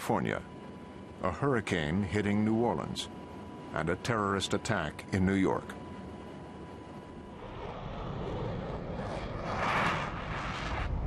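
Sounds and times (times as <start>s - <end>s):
jet airliner engines roaring: 0.0s - 11.0s.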